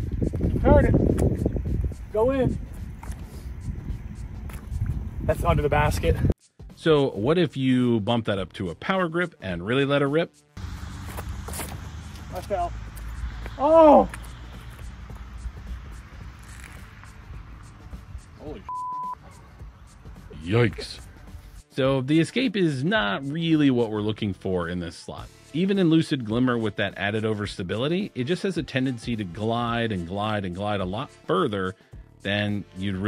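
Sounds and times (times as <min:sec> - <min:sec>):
wind buffeting microphone: 0:00.0 - 0:06.4
man exclaiming: 0:13.6 - 0:14.2
censor bleep: 0:18.7 - 0:19.2.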